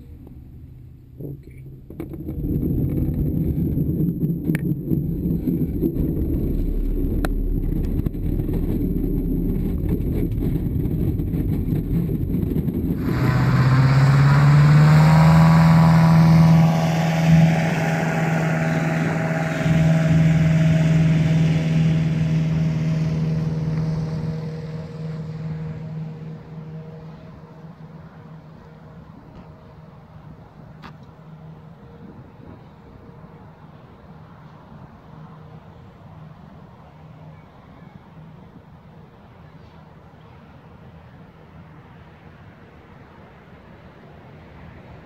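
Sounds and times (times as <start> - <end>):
light aircraft engine: 0.0 - 45.0
low rumble of glider rolling: 0.0 - 45.0.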